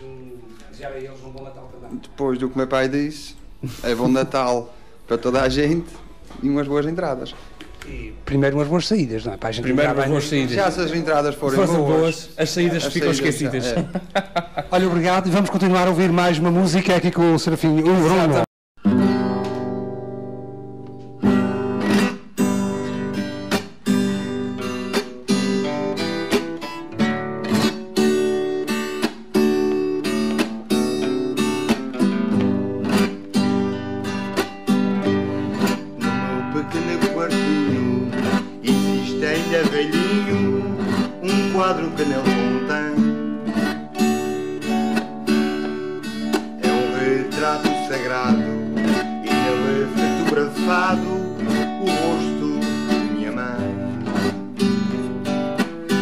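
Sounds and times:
classical guitars strumming: 0:14.6 - 0:56.0.

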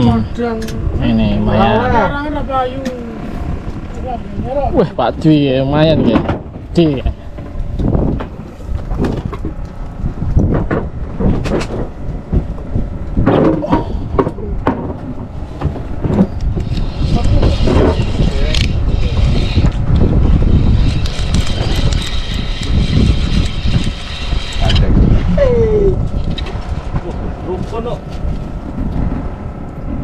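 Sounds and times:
low rumble: 0:00.0 - 0:30.0
fishing reel whine: 0:16.2 - 0:26.5.

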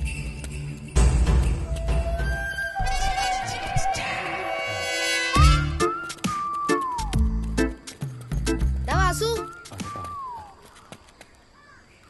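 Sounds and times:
high whistle-like tone sliding down: 0:01.8 - 0:07.2, 0:09.8 - 0:10.6.

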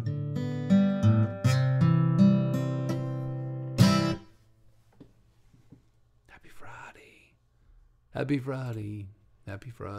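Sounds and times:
man whispering: 0:06.2 - 0:07.5.

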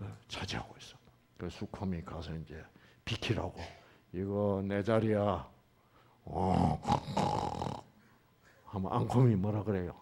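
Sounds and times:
man growling like a bear: 0:06.4 - 0:07.9.

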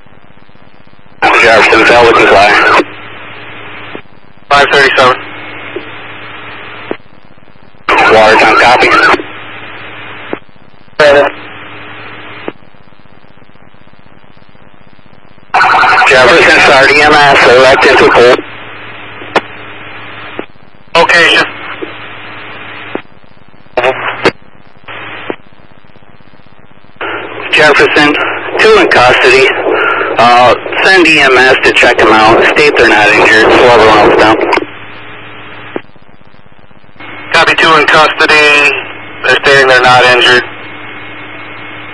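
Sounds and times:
faint steady hum: 0:00.0 - 0:41.9
low background noise: 0:00.0 - 0:41.9
radio hiss: 0:00.0 - 0:41.9
radio voice transmission: 0:01.2 - 0:07.1, 0:07.9 - 0:12.6, 0:15.6 - 0:25.4, 0:27.0 - 0:36.0, 0:37.0 - 0:41.9
radio click: 0:05.7 - 0:06.0, 0:06.8 - 0:07.1, 0:10.1 - 0:11.3, 0:12.3 - 0:12.7, 0:19.2 - 0:19.6, 0:20.2 - 0:20.6, 0:21.2 - 0:23.2, 0:23.8 - 0:34.8, 0:35.5 - 0:36.4.

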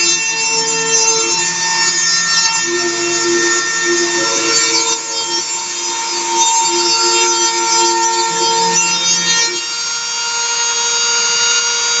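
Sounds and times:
stepper motors humming: 0:00.0 - 0:09.8
rotary tool high whine: 0:00.0 - 0:12.0.

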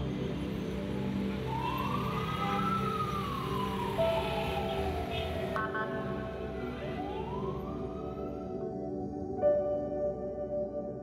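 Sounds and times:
distant siren wailing: 0:00.0 - 0:09.0.

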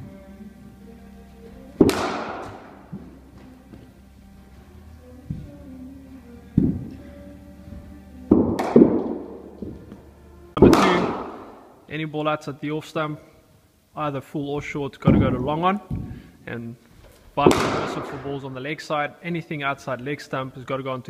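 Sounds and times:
faint background music: 0:00.0 - 0:21.0
cricket bat hitting ball: 0:01.8 - 0:03.2, 0:08.4 - 0:09.7, 0:10.6 - 0:11.7, 0:17.5 - 0:18.2.

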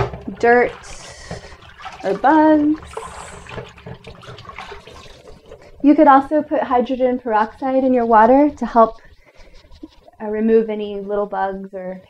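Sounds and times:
leaves splashing in water: 0:00.0 - 0:05.9.

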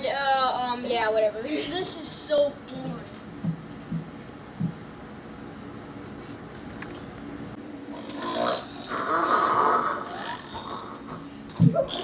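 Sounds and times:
person snoring: 0:07.9 - 0:12.0.

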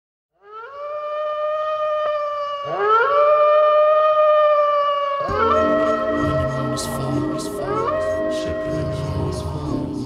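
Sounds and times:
wolves howling: 0:00.4 - 0:10.0.

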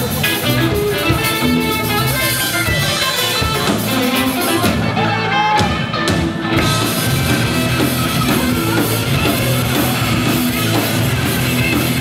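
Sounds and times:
drum kit: 0:00.0 - 0:12.0
electric guitar: 0:00.0 - 0:12.0.

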